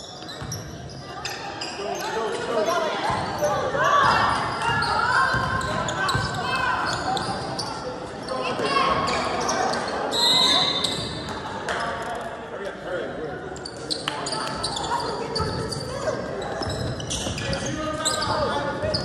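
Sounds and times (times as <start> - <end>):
sneaker squeaks: 0.0 - 12.0, 13.5 - 19.0.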